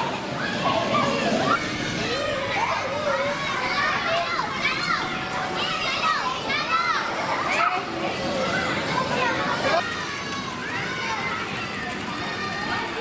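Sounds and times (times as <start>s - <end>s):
children shouting and squealing: 0.0s - 13.0s.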